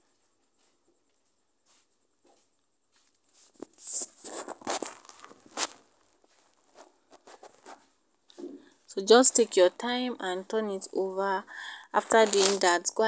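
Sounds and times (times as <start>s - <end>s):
fabric rustling and crinkling: 2.9s - 8.5s, 12.0s - 12.8s.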